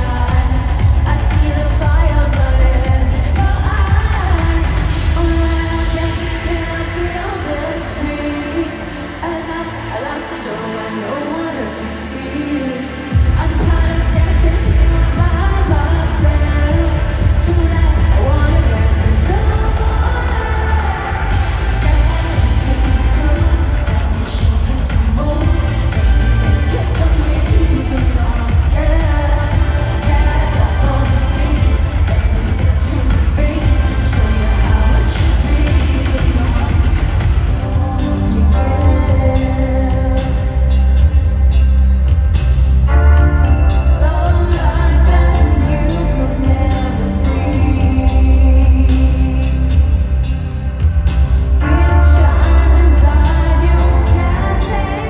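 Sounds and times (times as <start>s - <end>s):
live pop music with heavy bass: 0.0s - 55.0s.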